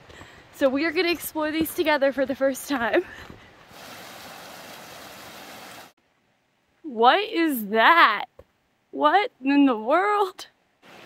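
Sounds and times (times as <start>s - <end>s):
running water: 3.6s - 6.0s.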